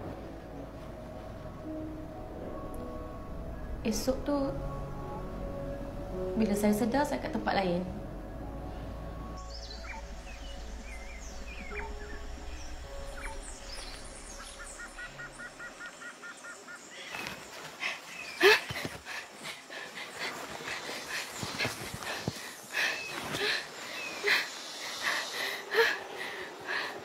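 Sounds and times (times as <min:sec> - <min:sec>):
low hum: 0:00.0 - 0:16.2
birds chirping: 0:09.1 - 0:26.9
bird trilling: 0:09.5 - 0:17.2.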